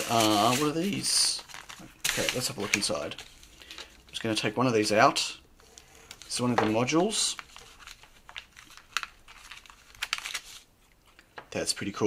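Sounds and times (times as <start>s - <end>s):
plastic bag crinkling: 0.0s - 4.3s, 5.6s - 10.7s.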